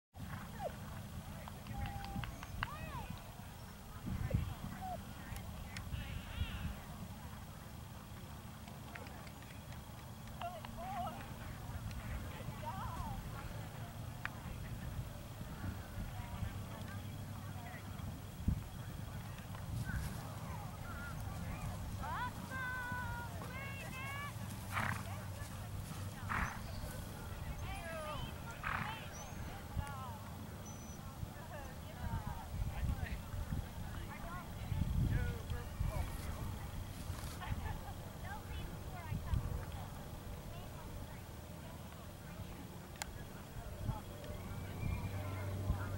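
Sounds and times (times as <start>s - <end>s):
wind rumble on microphone: 0.2s - 7.6s, 11.2s - 29.9s, 31.2s - 41.2s, 43.4s - 45.9s
faint distant voices: 0.2s - 45.9s
horse snorting: 24.7s - 25.1s, 26.2s - 26.7s, 28.6s - 29.1s.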